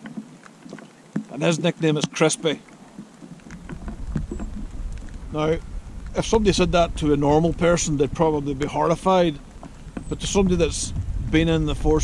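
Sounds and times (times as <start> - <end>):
light rain pattering: 0.0 - 12.0
low rumble: 3.8 - 12.0.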